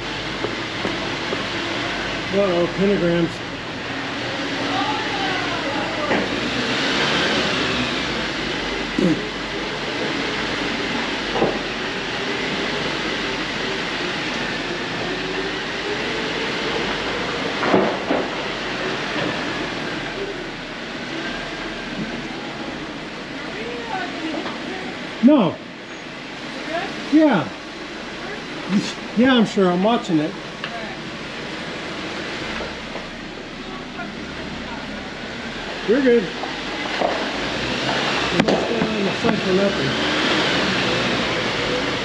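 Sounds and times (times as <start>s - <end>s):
engine drone: 0.0s - 42.0s
tyres rumbling on rocks: 30.5s - 42.0s.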